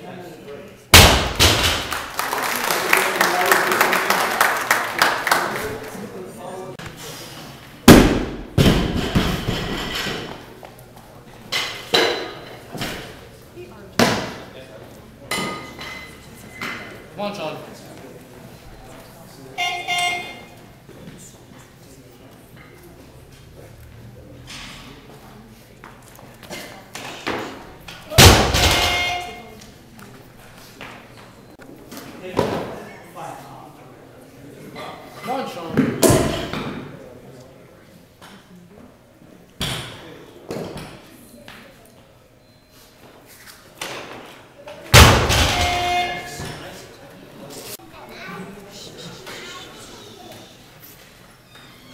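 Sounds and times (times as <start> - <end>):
barbell dropped with heavy thud: 1.0 - 1.9, 28.2 - 29.4, 45.0 - 46.4
electronic horn tone: 19.6 - 20.5, 28.8 - 29.5.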